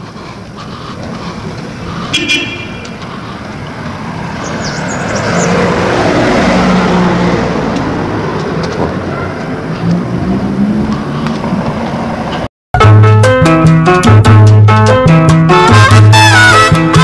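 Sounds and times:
vehicle engine and tyre noise: 0.0 - 12.5.

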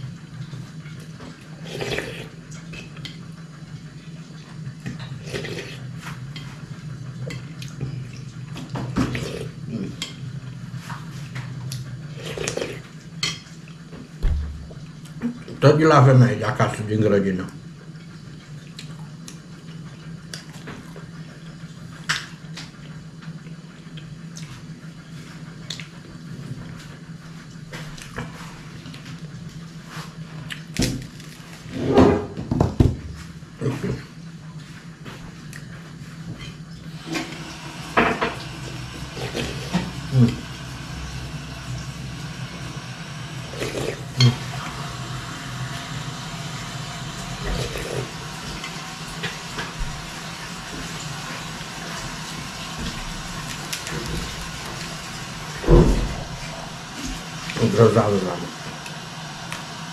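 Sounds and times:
steady low hum: 0.0 - 59.9
slurping and chewing: 0.9 - 3.1, 5.0 - 6.7, 7.4 - 10.0, 10.8 - 13.8, 38.4 - 55.7.

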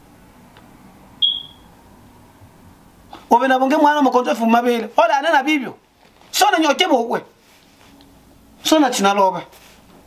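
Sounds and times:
short high-pitched beep: 1.2 - 1.7.

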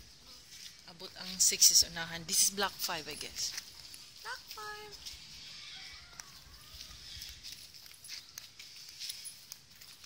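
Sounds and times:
soft outdoor hiss: 0.0 - 10.0
footsteps on gravel: 2.6 - 10.0.

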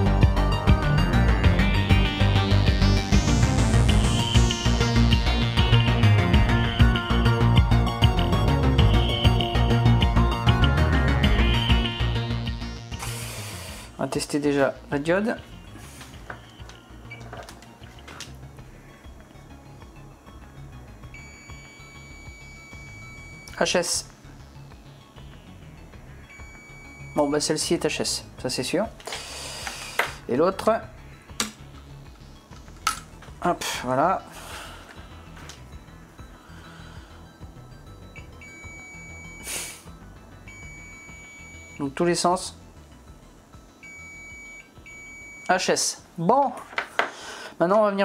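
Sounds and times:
multimeter beep: 21.1 - 23.6, 26.2 - 27.6, 38.1 - 39.5, 40.5 - 41.9, 43.8 - 45.6.

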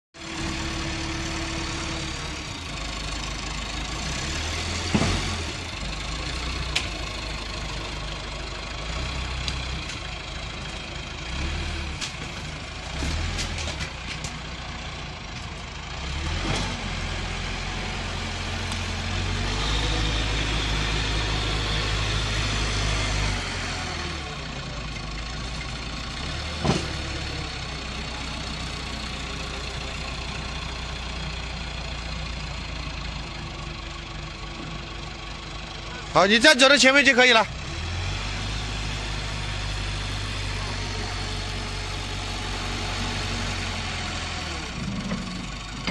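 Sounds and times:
diesel engine revving: 0.2 - 45.9.

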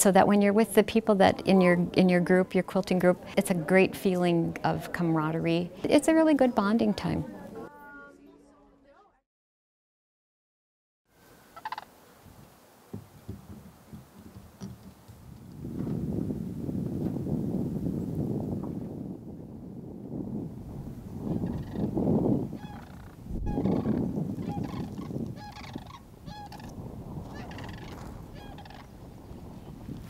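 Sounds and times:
cranes calling: 11.2 - 12.0, 21.3 - 22.0, 22.6 - 29.1.

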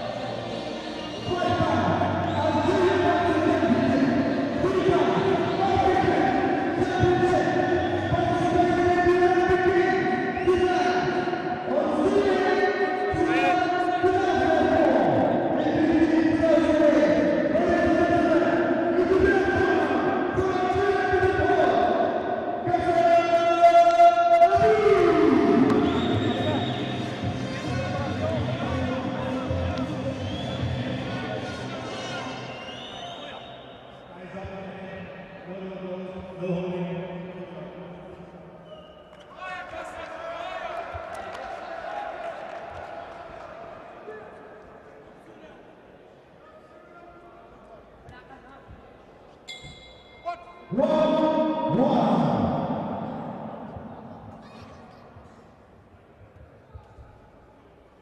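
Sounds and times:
crowd noise in large hall: 0.0 - 58.0.

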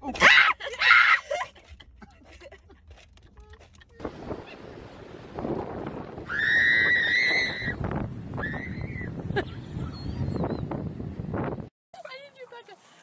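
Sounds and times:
wind: 0.0 - 13.0.

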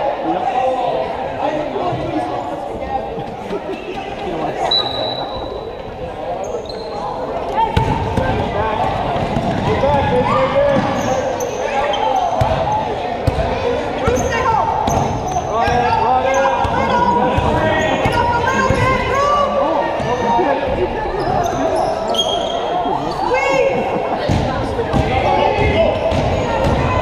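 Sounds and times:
people shouting and talking: 0.0 - 27.0.

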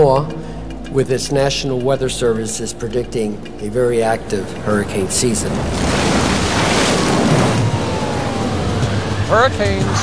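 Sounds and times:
hurricane wind and rain rushing: 3.4 - 10.0.

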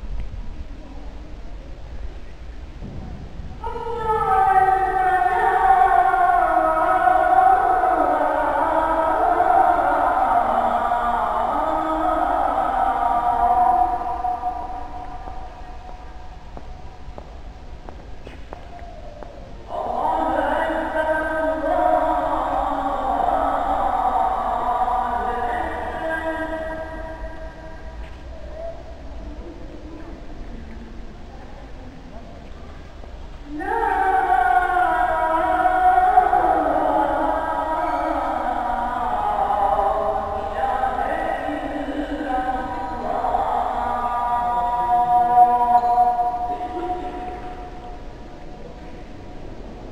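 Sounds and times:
man chanting call to prayer: 3.6 - 16.4, 18.6 - 29.6, 33.5 - 49.2.

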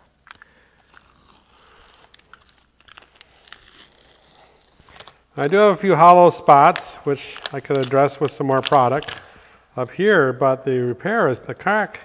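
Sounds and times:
tape peeling off concrete: 0.0 - 5.8.

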